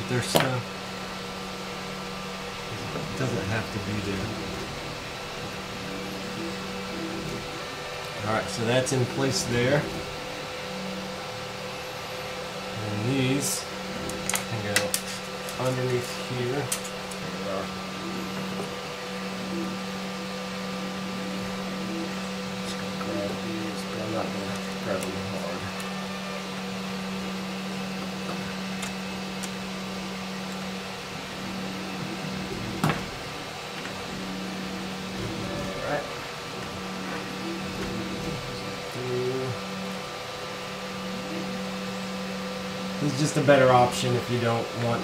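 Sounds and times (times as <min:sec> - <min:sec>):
steady electrical hum: 0:00.0 - 0:45.0
connectors clicking and rustling: 0:13.0 - 0:38.9.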